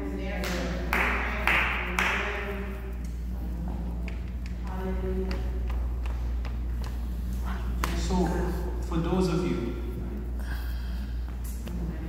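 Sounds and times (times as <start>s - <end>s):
steady low hum: 0.0s - 12.0s
man breathing heavily into microphone: 10.3s - 11.4s.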